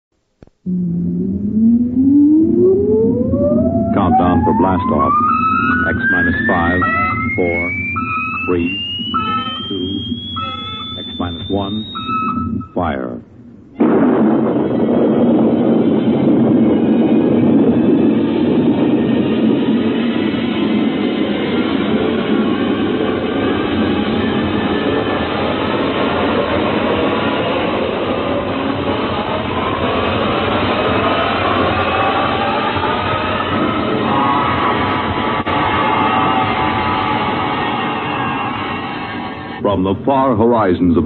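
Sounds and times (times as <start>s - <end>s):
rising tones: 0.6s - 40.0s
rocket roar: 0.7s - 12.9s, 13.5s - 39.8s.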